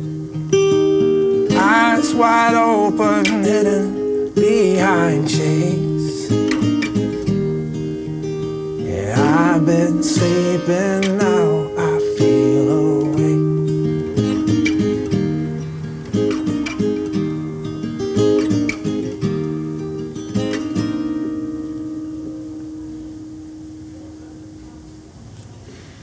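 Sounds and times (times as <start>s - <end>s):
acoustic guitar picking: 0.0s - 26.0s.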